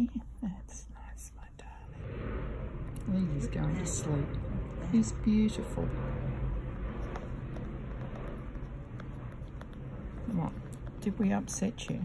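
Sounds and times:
soft whispering: 0:00.0 - 0:02.0.

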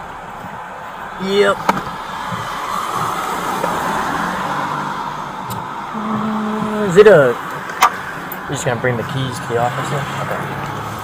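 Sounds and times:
rushing vehicle noise: 0:00.0 - 0:11.0.

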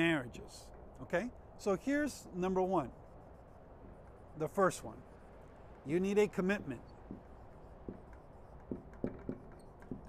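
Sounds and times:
marker writing on whiteboard: 0:05.9 - 0:10.0.

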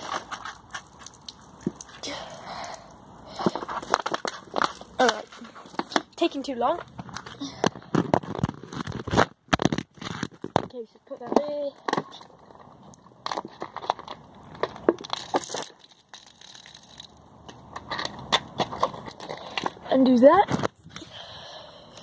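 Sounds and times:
plastic bottle crackling: 0:00.0 - 0:19.8.

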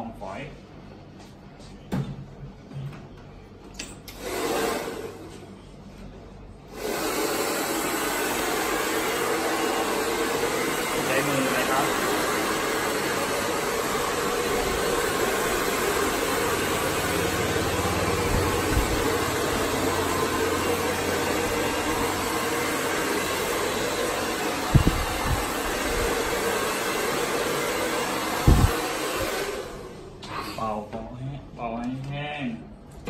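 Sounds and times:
hair dryer blowing: 0:04.1 - 0:05.3, 0:06.7 - 0:30.3.

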